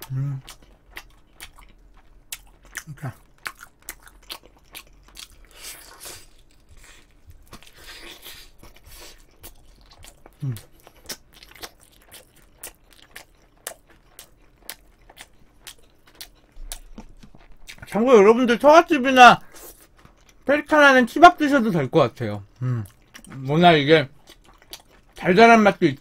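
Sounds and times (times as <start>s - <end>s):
crunchy chewing of fried chicken: 0.0s - 18.7s, 19.4s - 20.5s, 22.4s - 26.0s
low hum from eater: 0.0s - 26.0s.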